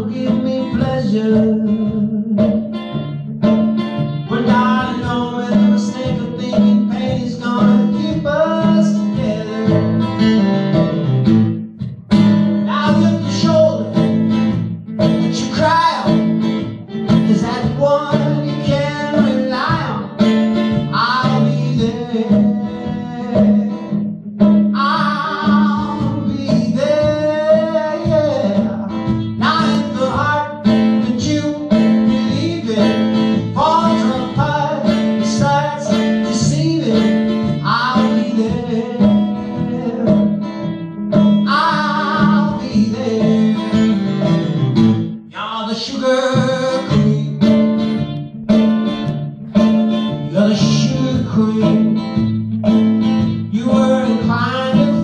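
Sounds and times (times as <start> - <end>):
man singing with vibrato: 0.0 - 3.0, 4.2 - 11.4, 12.3 - 48.0, 49.5 - 55.0
acoustic guitar: 0.0 - 55.0.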